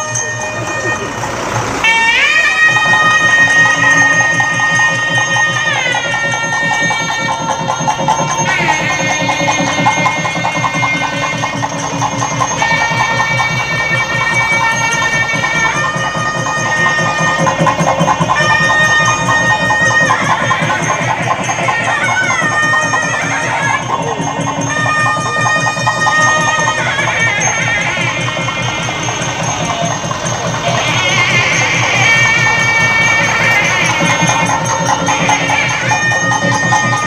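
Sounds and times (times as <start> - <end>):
fast drumming: 0.0 - 37.0
reedy wind instrument melody: 0.0 - 37.0.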